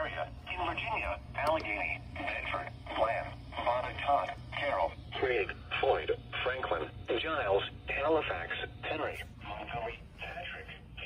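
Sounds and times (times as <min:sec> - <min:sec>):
automated voice through small speaker: 0:00.0 - 0:11.0
steady low hum: 0:00.0 - 0:11.0.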